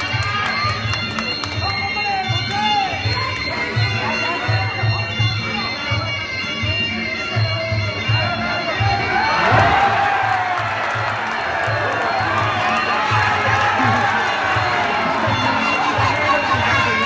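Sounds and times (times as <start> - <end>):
crowd cheering and shouting: 0.0 - 3.5, 8.2 - 17.0.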